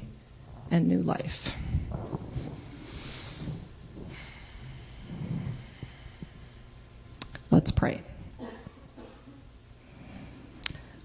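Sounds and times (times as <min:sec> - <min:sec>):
steady low hum: 0:00.0 - 0:11.0
microphone handling thumps and rustle: 0:00.4 - 0:06.3.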